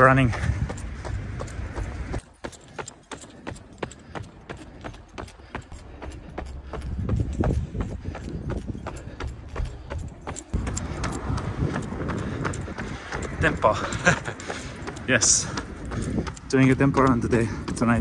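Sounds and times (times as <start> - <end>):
running footsteps on pavement: 0.0 - 18.0.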